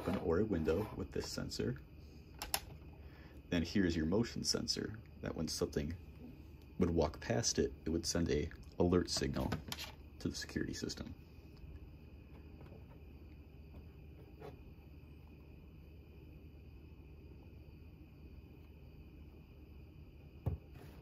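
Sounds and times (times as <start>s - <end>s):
faint high-pitched hum: 0.0s - 21.0s.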